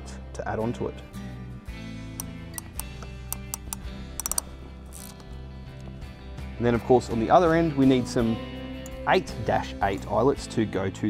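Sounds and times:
background music: 0:00.0 - 0:11.0
crimping tool clicking: 0:02.2 - 0:05.9.

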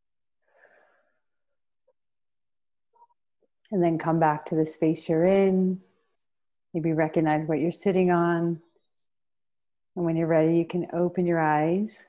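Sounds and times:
woman breathing: 0:00.4 - 0:01.5.

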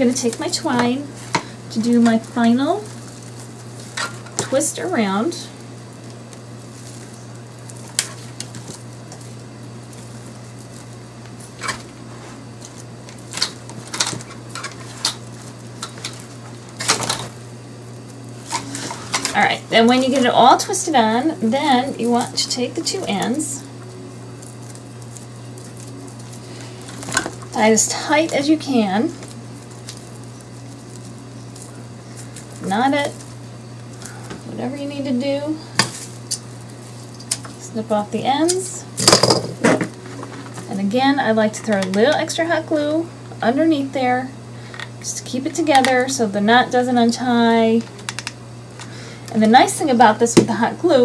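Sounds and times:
dry twigs rustling and crackling: 0:00.0 - 0:43.4, 0:44.3 - 0:50.3
low steady hum: 0:00.0 - 0:51.0
sharp clicks and snaps: 0:47.9 - 0:48.4.

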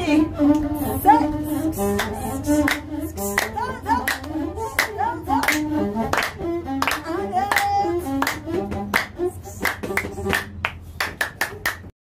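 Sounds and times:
bowed one-string fiddle melody: 0:00.0 - 0:10.4
hand claps keeping time: 0:02.0 - 0:11.9.

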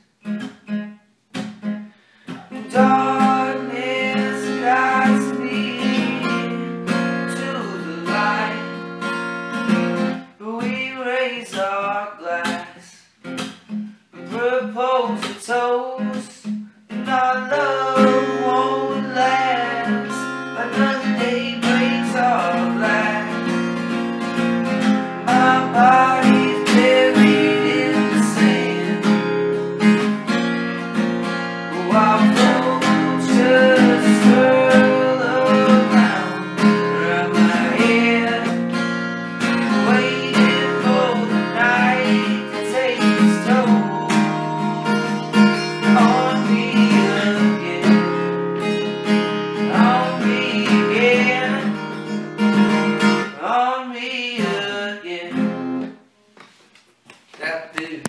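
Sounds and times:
acoustic guitar strumming: 0:00.0 - 0:56.1
person singing: 0:02.4 - 0:09.1, 0:10.3 - 0:13.1, 0:14.2 - 0:23.6, 0:25.2 - 0:30.0, 0:31.6 - 0:38.8, 0:39.4 - 0:48.9, 0:49.5 - 0:52.1, 0:53.1 - 0:55.6.

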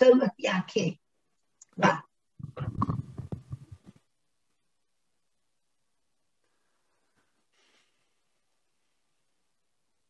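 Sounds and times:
soft hiss: 0:02.4 - 0:10.0.

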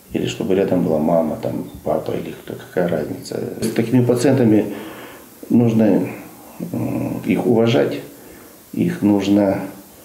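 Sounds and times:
man talking: 0:00.0 - 0:04.8, 0:05.4 - 0:09.8.

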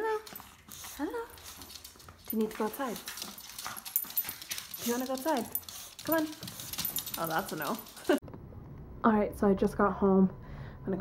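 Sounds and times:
dog claws clicking on hard floor: 0:00.2 - 0:08.2.

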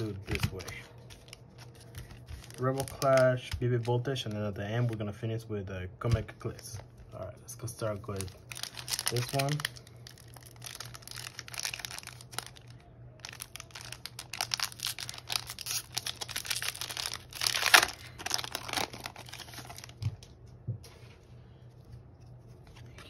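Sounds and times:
foil wrapper crinkling and tearing: 0:00.0 - 0:04.5, 0:07.9 - 0:20.3.

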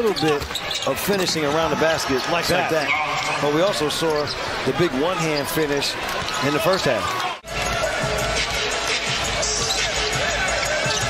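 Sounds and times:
sneaker squeaks: 0:00.0 - 0:04.5, 0:05.1 - 0:07.8, 0:09.2 - 0:11.0
arena crowd noise: 0:00.0 - 0:11.0.

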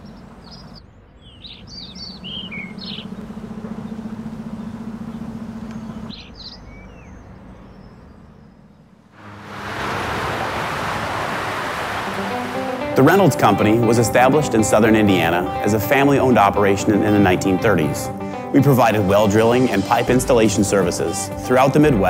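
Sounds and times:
small birds chirping: 0:00.0 - 0:09.1
heavy highway traffic: 0:00.0 - 0:13.6
steady low hum: 0:00.0 - 0:14.8.

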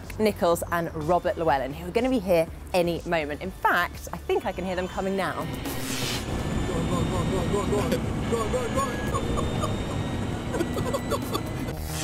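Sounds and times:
men laughing: 0:06.5 - 0:11.8.

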